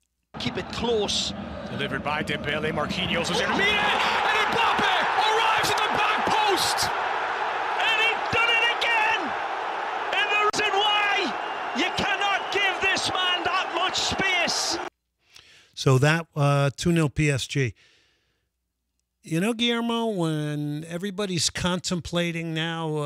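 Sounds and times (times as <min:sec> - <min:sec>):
stadium crowd din: 0:00.4 - 0:14.9
commentator calling play: 0:03.1 - 0:07.0, 0:07.7 - 0:09.3, 0:10.1 - 0:14.9.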